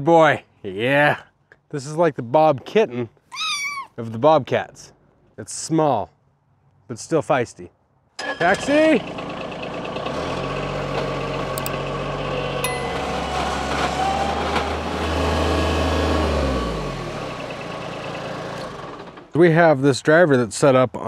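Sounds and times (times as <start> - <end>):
loader engine running: 9.0 - 19.4.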